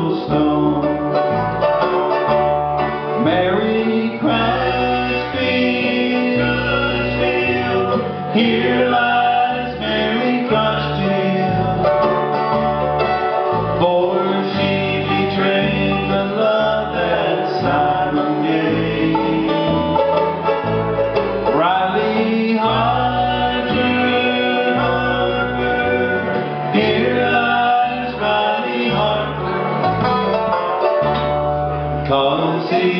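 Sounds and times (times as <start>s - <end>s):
banjo picking: 0.0s - 32.9s
bass line: 0.0s - 32.9s
bluegrass band playing: 0.0s - 32.9s
guitar picking: 0.0s - 32.9s.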